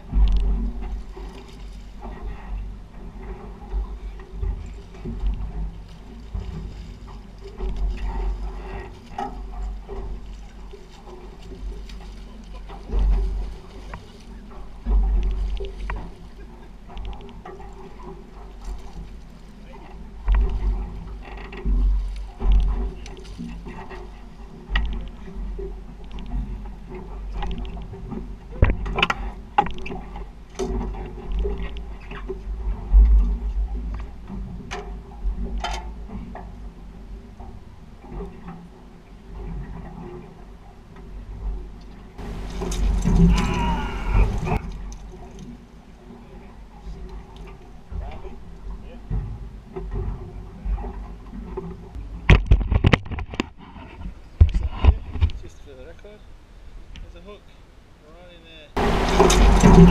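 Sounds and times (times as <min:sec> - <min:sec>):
water lapping against boat: 0:00.0 - 0:58.0, 0:58.7 - 0:59.9
wind gusting on microphone: 0:42.2 - 0:45.0, 0:58.8 - 0:59.9
rush of noise: 0:58.8 - 0:59.9.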